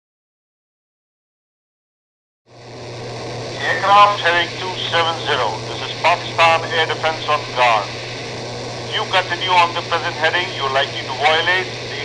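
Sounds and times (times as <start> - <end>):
low hum with hiss: 2.5 - 12.0
man speaking over radio: 3.6 - 8.2, 8.9 - 12.0.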